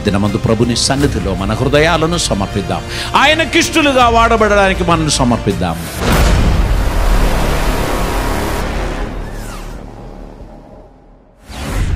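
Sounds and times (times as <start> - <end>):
music: 0.0 - 11.9
boom with deep rumble: 6.0 - 11.9.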